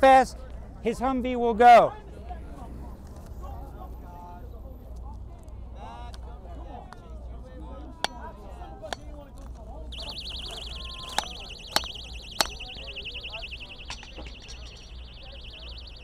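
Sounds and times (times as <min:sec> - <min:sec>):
warbling electronic alarm: 0:10.0 - 0:16.0
hammer striking rail: 0:11.0 - 0:12.8.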